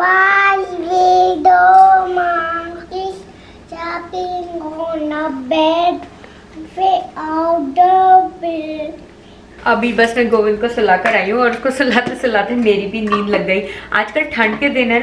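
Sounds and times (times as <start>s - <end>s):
young boy singing: 0.0s - 9.0s.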